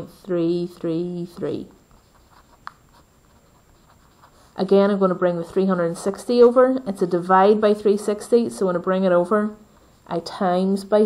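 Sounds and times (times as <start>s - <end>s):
pen scratching on paper: 0.8s - 4.7s.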